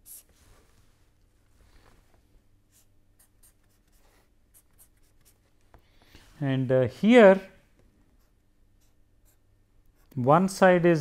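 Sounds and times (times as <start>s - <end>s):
marker scratching on paper: 0.0s - 0.4s, 2.7s - 5.5s.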